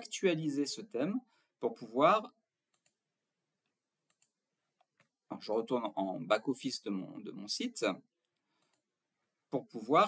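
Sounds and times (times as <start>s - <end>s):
computer mouse clicks: 2.7s - 3.0s, 4.0s - 5.1s, 8.2s - 8.9s.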